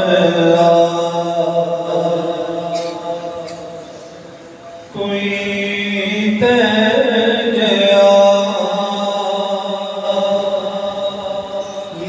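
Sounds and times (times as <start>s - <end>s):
man reciting into a microphone: 0.0s - 12.0s.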